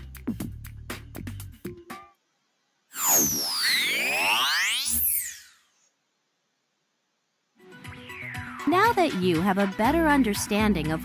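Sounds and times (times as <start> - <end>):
electronic tones sweeping in pitch: 2.9 - 5.8, 7.8 - 8.8.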